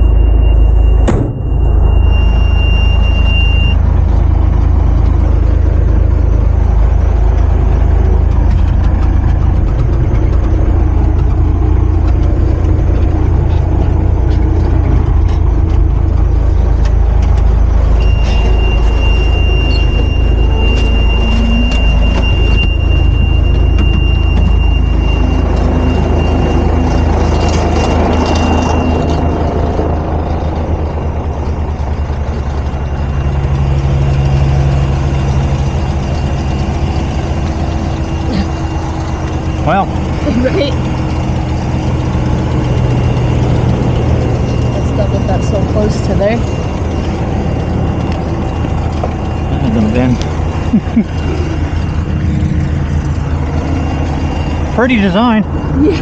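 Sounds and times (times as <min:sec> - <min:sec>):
truck diesel engine running: 0:00.0 - 0:56.0.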